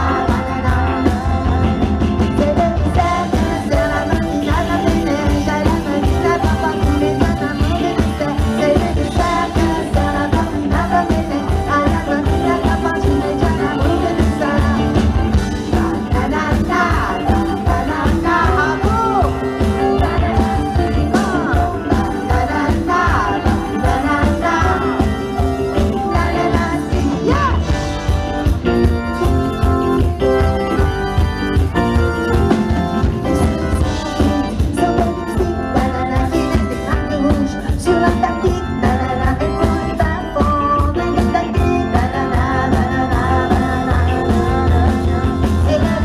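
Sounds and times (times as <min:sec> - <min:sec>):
woman singing into microphone: 0:00.0 - 0:27.8, 0:33.6 - 0:46.0
steady drum beat: 0:00.0 - 0:36.2
live pop band: 0:00.0 - 0:46.0
organ-like keyboard: 0:00.0 - 0:46.0.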